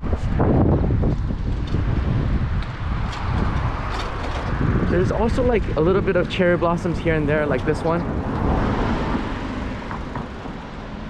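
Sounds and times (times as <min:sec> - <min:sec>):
faint road noise: 0:00.0 - 0:11.0
wind buffeting microphone: 0:00.0 - 0:11.0.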